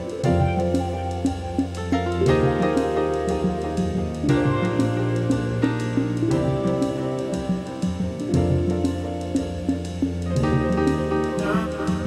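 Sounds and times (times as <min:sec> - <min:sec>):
drum kit steady beat: 0:00.0 - 0:12.0
held chords: 0:00.0 - 0:12.0.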